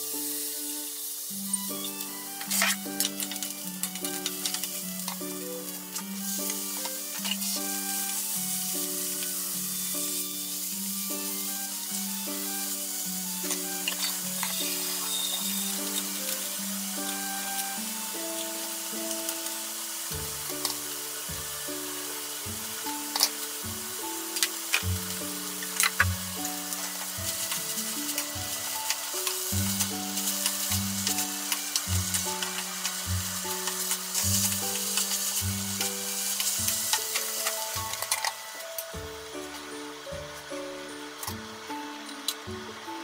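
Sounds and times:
background music: 0:00.0 - 0:43.0
food sizzling in a frying pan: 0:00.0 - 0:43.0.

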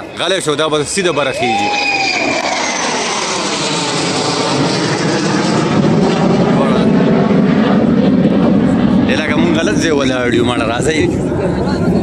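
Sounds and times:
fighter jet flying overhead: 0:00.0 - 0:12.0.

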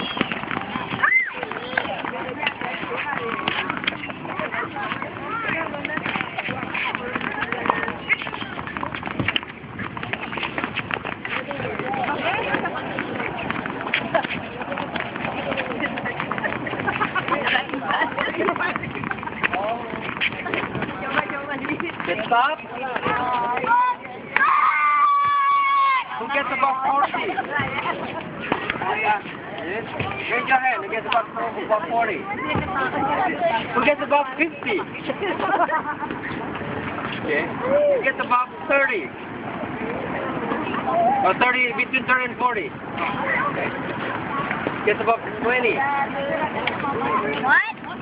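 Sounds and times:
tennis balls bouncing on rackets: 0:00.0 - 0:25.5, 0:26.3 - 0:31.2, 0:32.1 - 0:37.2
children chattering: 0:00.0 - 0:38.1, 0:39.2 - 0:41.4, 0:42.7 - 0:48.0.

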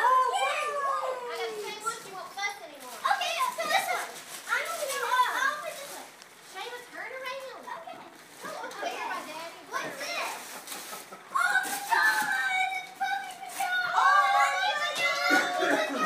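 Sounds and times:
children and adults chattering: 0:00.0 - 0:16.0
excited exclamations: 0:13.7 - 0:16.0.

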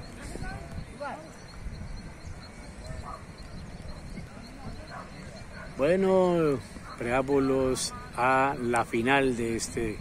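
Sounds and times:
faint distant voices: 0:00.0 - 0:10.0
wind rumble on microphone: 0:00.0 - 0:10.0.

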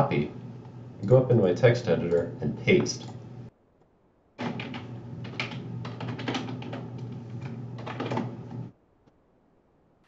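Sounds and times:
low steady hum: 0:00.0 - 0:10.0
fast keyboard typing: 0:04.4 - 0:08.7.

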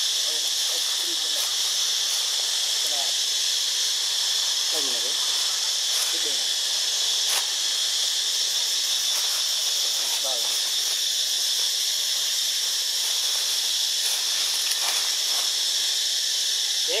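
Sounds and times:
insects droning: 0:00.0 - 0:17.0.

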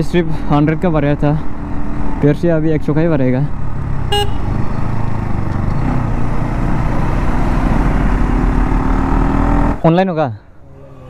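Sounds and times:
motorcycle engine at speed: 0:00.6 - 0:09.8
horn toot: 0:04.1 - 0:04.5.

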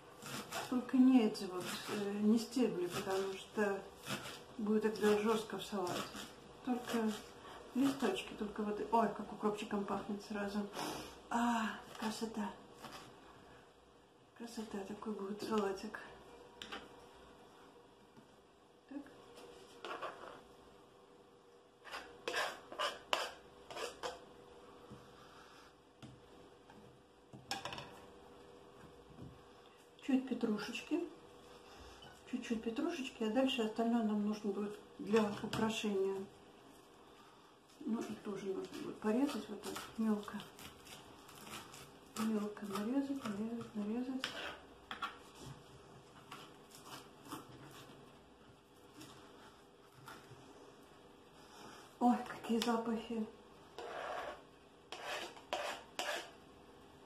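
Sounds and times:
knife scraping plastic cutting board: 0:00.2 - 0:04.4, 0:05.0 - 0:08.2, 0:19.8 - 0:20.4, 0:21.8 - 0:24.2, 0:38.0 - 0:45.5, 0:53.8 - 0:56.4.

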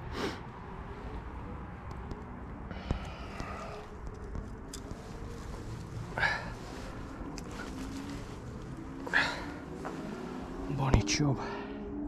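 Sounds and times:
steady low rumble: 0:00.0 - 0:12.0
rustling of net: 0:04.8 - 0:09.2.

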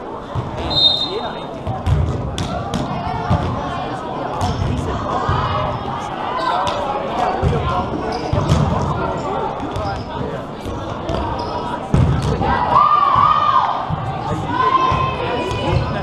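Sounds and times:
voices echoing in a hall: 0:00.0 - 0:16.0
ball hitting and bouncing: 0:01.6 - 0:03.6, 0:08.3 - 0:08.8.

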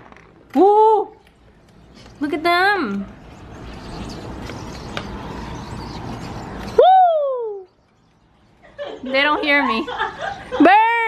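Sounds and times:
low outdoor rumble: 0:00.0 - 0:10.6
flock of small birds chattering: 0:01.6 - 0:06.8, 0:07.5 - 0:10.6.

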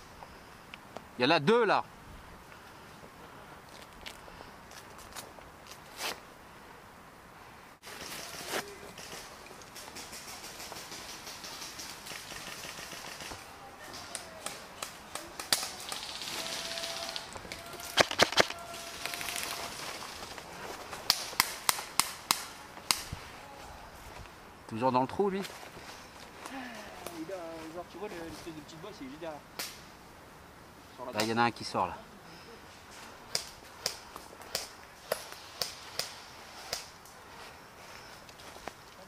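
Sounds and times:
dry leaves crunching underfoot: 0:15.1 - 0:21.4
airsoft guns firing pops: 0:17.9 - 0:18.6.

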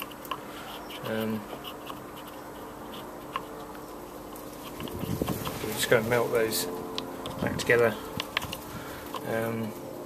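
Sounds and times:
fingers handling plastic part: 0:00.0 - 0:05.6
low background hum: 0:00.0 - 0:10.0.

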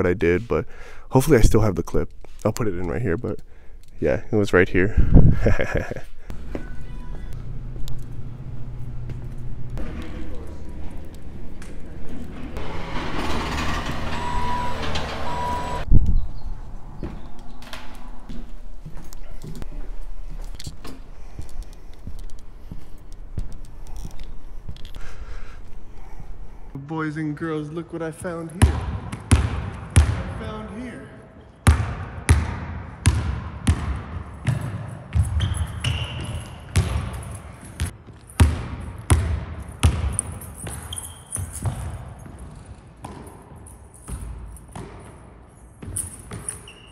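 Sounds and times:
reversing alarm beeping: 0:13.5 - 0:15.9
basketball bouncing on hardwood floor: 0:28.6 - 0:30.2, 0:31.7 - 0:43.4.

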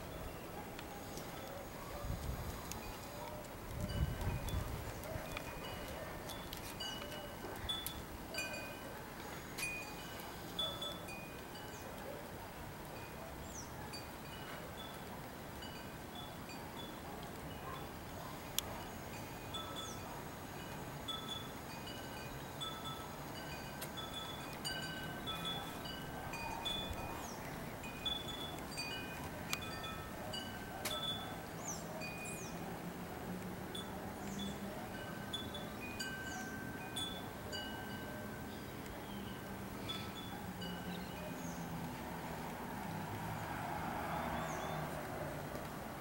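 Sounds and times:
wind chime ringing: 0:05.4 - 0:09.0, 0:09.6 - 0:11.8, 0:19.1 - 0:31.4, 0:34.9 - 0:38.7.

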